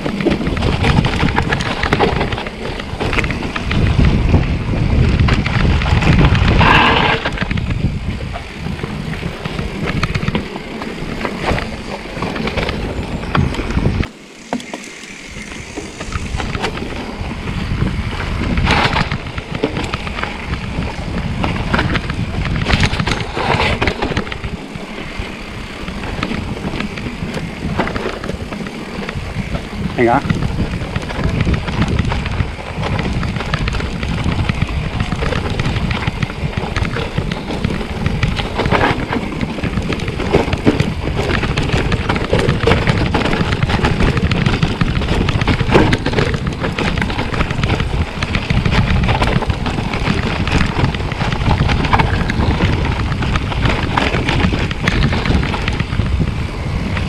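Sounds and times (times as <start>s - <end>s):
tyres rumbling on dirt: 0.0s - 57.0s.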